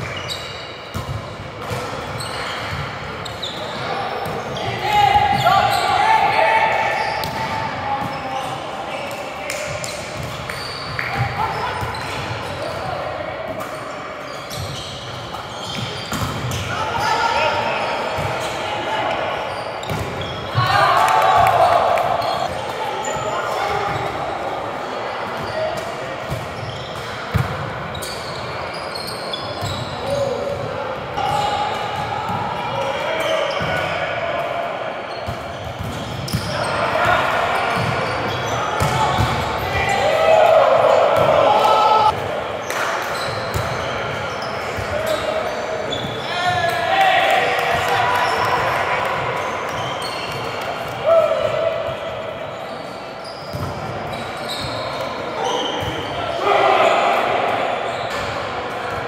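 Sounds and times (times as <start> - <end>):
players shouting: 3.4 - 8.8, 16.5 - 24.4, 36.3 - 42.2, 54.4 - 58.0.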